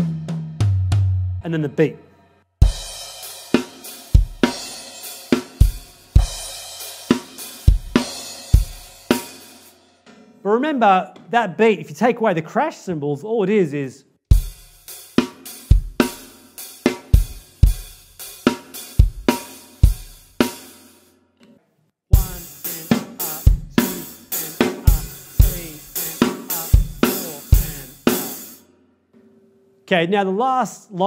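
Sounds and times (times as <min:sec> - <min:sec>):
drum kit rock beat: 0:00.0 - 0:01.6, 0:02.6 - 0:11.4, 0:14.3 - 0:21.1, 0:22.1 - 0:28.6.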